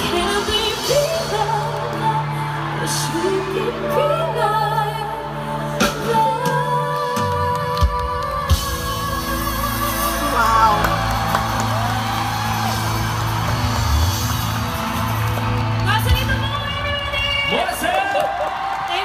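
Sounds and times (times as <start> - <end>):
audience cheering and whooping: 0.0 - 4.9, 9.3 - 19.0
man and woman singing duet: 0.0 - 11.7
band accompaniment: 5.7 - 18.8.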